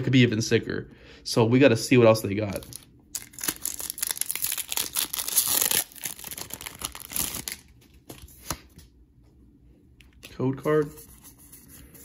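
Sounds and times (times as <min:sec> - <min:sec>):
foil pack tearing and crinkling: 0:02.7 - 0:07.7.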